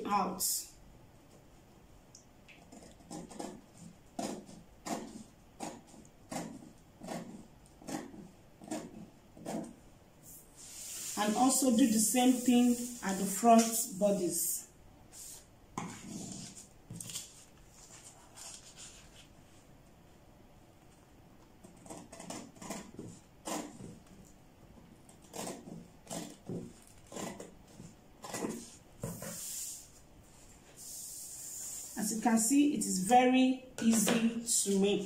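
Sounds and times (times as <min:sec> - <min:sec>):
paper rustling: 0:15.8 - 0:19.6.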